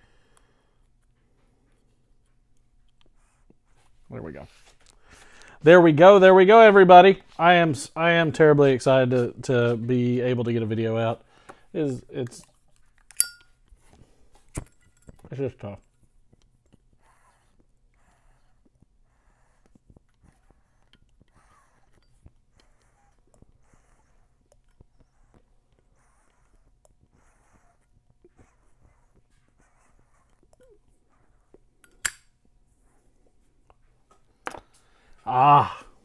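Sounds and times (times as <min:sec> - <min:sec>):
metal clink with ring: 0:13.1 - 0:13.6.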